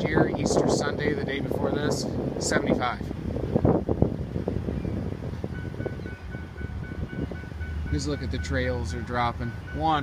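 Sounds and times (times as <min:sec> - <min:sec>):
car engine rumbling: 0:00.0 - 0:10.0
wind on microphone: 0:00.0 - 0:10.0.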